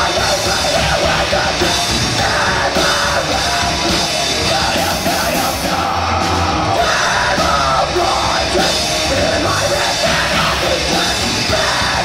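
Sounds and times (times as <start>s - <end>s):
death metal band playing: 0.0s - 12.0s.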